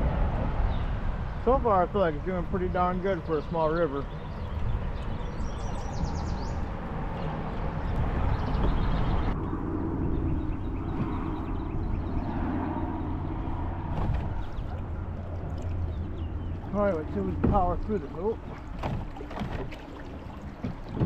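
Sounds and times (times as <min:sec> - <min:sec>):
low rumble: 0:00.0 - 0:21.0
water running along hull: 0:00.0 - 0:21.0
bird chirping: 0:03.1 - 0:18.8.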